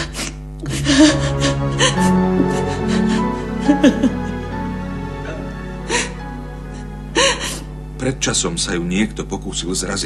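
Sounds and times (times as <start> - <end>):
woman sobbing: 0.0 - 7.7
soft background music: 0.6 - 10.0.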